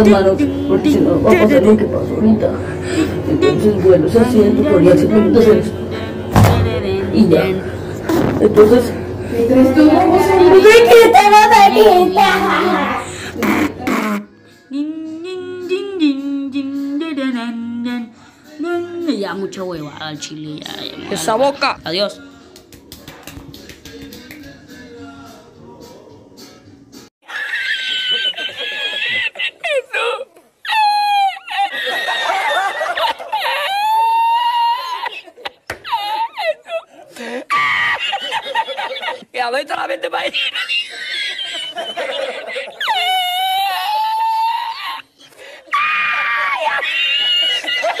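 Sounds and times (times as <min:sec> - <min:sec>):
background music: 0:09.1 - 0:27.1
man's high-pitched squealing laugh: 0:27.2 - 0:39.2, 0:40.4 - 0:48.0.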